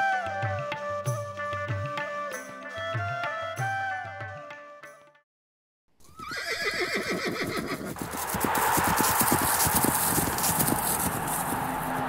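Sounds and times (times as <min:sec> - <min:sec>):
horse whinnying: 0:06.0 - 0:08.0
hooves clattering: 0:07.5 - 0:12.0
steady rush of noise: 0:08.0 - 0:12.0.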